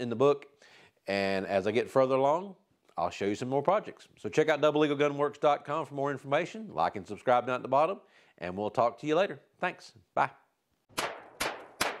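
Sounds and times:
gunshots with echo: 11.0s - 12.0s.

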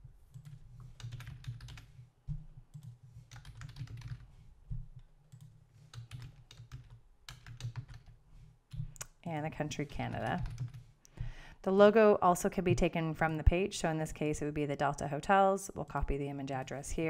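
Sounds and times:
keyboard typing clicks: 2.7s - 4.2s, 5.3s - 8.1s.

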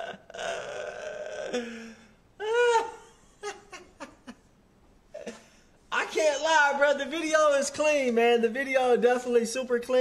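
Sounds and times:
man laughing heartily: 2.5s - 4.5s.

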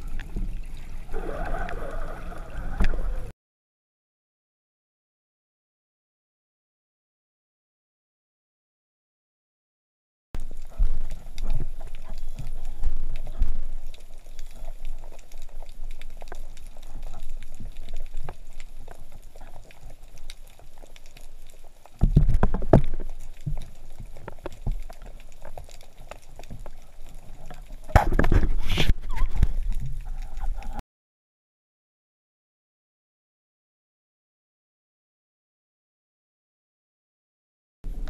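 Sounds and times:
bubbling and rushing water: 0.0s - 3.3s, 10.4s - 30.8s
underwater clicks and water noise: 0.0s - 3.3s, 10.4s - 30.8s.

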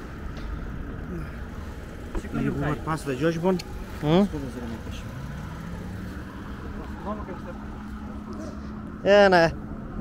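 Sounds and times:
motor vehicle rumble: 0.0s - 10.0s.

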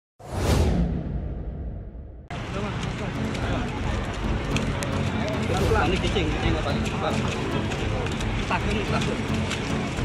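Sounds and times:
whoosh sound effect: 0.2s - 2.3s
low rumble: 0.2s - 6.6s.

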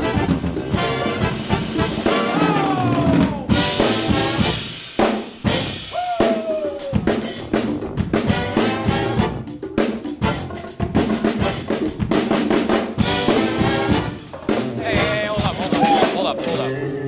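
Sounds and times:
funk band playing: 0.0s - 16.8s.

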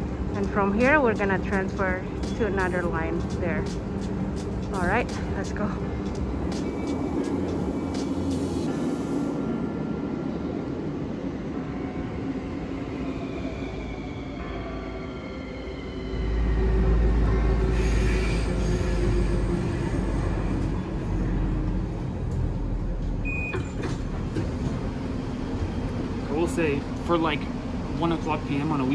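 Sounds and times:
low rumble of train running: 0.0s - 28.9s.

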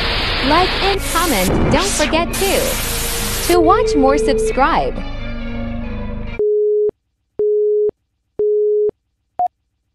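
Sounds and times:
outro music: 0.4s - 6.4s.

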